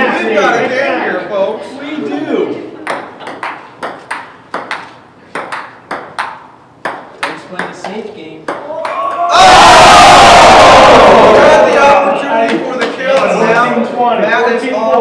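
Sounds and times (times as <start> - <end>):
table tennis ball clicking: 2.8 - 9.0
onlookers shouting: 8.7 - 12.0.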